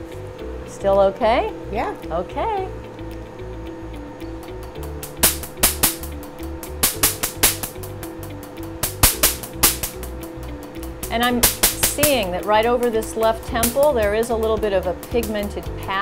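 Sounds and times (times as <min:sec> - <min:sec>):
laser snapping: 0:05.0 - 0:08.1, 0:08.8 - 0:10.1, 0:10.8 - 0:12.3.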